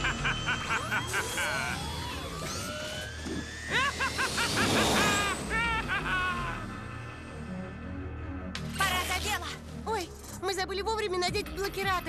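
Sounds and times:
cartoon motorbike engine whine: 0.0s - 8.2s
fast action music: 7.2s - 12.0s.

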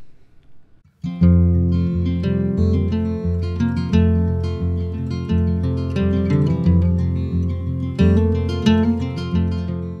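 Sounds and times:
acoustic guitar strumming: 0.9s - 10.0s.

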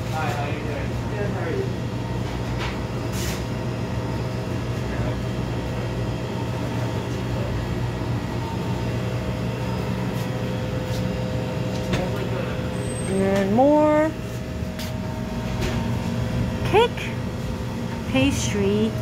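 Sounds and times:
low mechanical hum of shop equipment: 0.0s - 19.0s.

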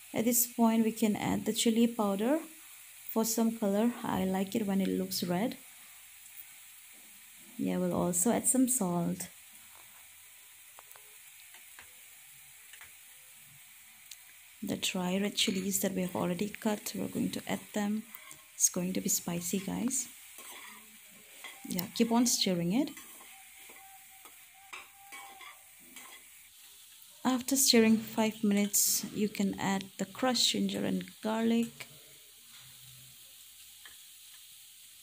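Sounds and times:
pork sizzling in a pot: 0.0s - 35.0s
metal spoon scraping a pan: 19.5s - 26.4s.

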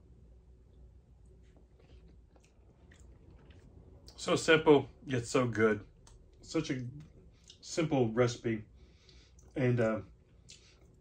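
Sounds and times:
faint chewing: 0.7s - 4.3s, 6.0s - 7.7s, 10.2s - 11.0s
soft mouth clicks: 10.4s - 11.0s.

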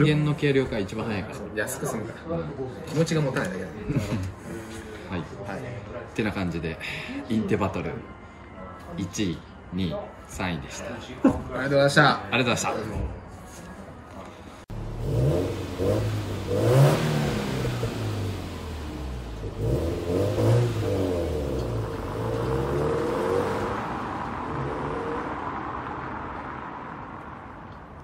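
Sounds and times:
car engine accelerating: 14.7s - 26.9s.

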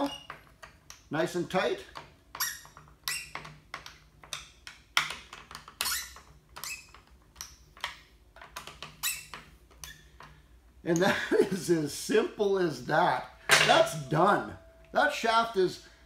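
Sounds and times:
screwdriver squeaks and clicks: 0.0s - 1.0s, 2.3s - 4.4s, 5.5s - 7.9s, 8.6s - 10.1s.

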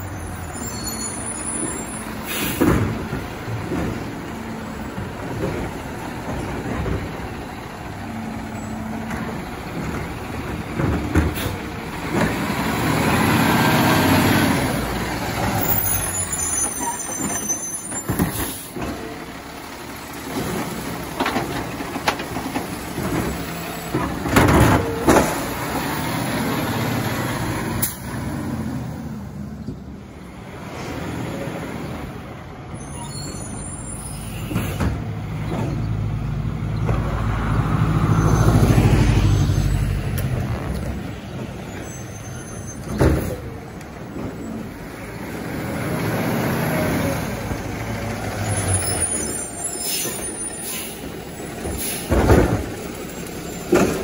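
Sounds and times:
air brakes hissing: 0.9s - 3.0s, 11.3s - 11.7s, 16.0s - 19.0s, 32.8s - 35.1s, 48.9s - 52.4s
garbage truck engine revving: 1.2s - 29.6s, 34.1s - 54.0s.

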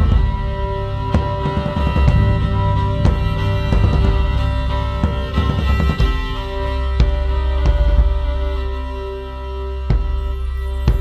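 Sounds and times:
deep low drone: 0.0s - 11.0s
instrumental folk music: 0.0s - 11.0s.

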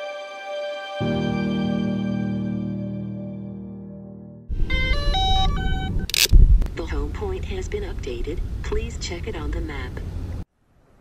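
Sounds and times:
electronic jingle of beeping tones: 4.7s - 6.1s.

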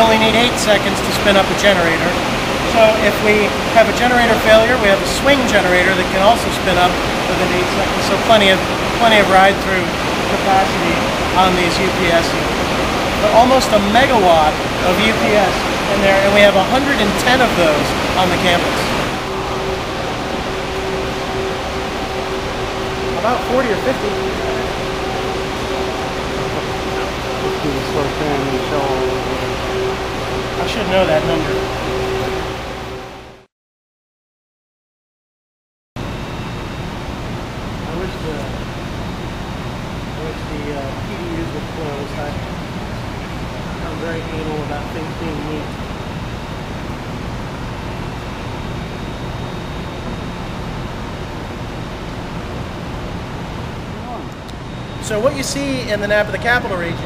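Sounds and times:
rush of cooling air: 0.0s - 33.4s, 36.0s - 57.0s
machine hum: 0.0s - 33.5s, 36.0s - 57.0s.

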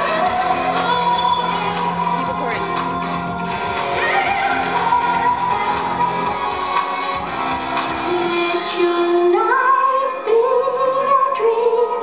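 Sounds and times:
backing music: 0.0s - 12.0s.

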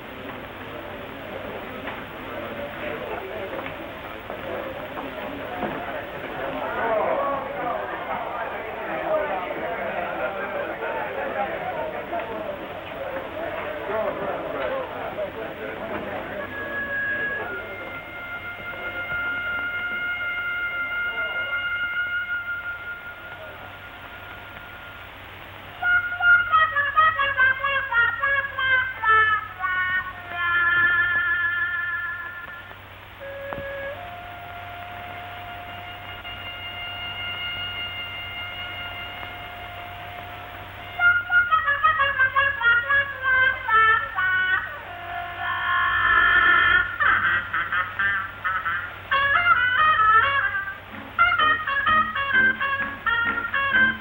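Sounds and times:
faint steady hum: 0.0s - 54.0s
solo trumpet playing: 16.0s - 54.0s.

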